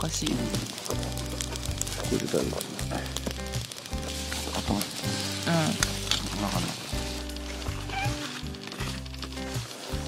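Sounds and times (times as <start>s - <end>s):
background music: 0.0s - 10.0s
food sizzling on gas stove: 0.0s - 10.0s.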